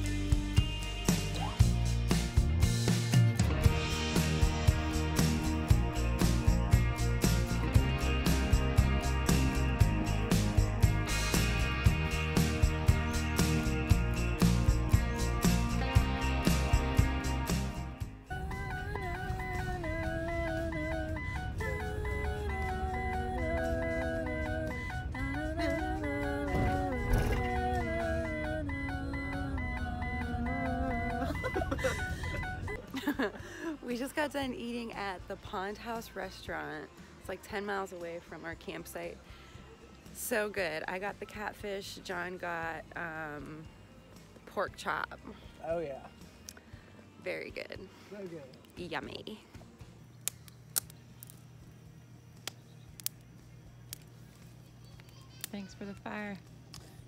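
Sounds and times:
campfire crackling: 0:01.1 - 0:33.8, 0:44.2 - 0:57.0
person singing long notes: 0:18.3 - 0:31.5
dashboard warning chime beeping: 0:18.3 - 0:32.8.

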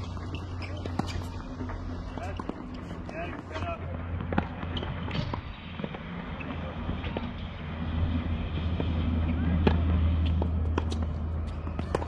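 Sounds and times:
tennis balls being struck: 0:00.0 - 0:06.1.

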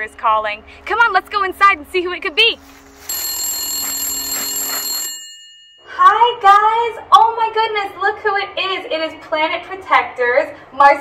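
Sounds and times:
phone ringing: 0:03.1 - 0:06.0.

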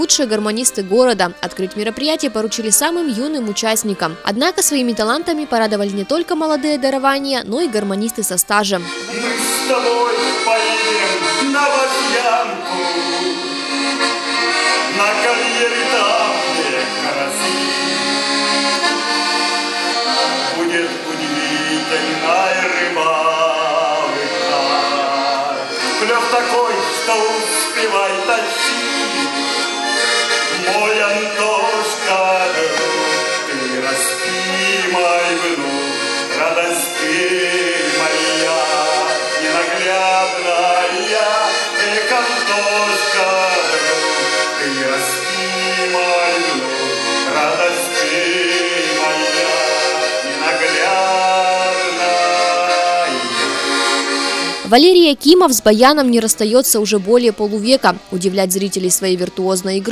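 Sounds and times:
button accordion playing folk tune: 0:00.0 - 0:59.9
man singing: 0:09.0 - 0:13.9, 0:14.8 - 0:18.1, 0:20.2 - 0:29.3, 0:30.5 - 0:53.8.

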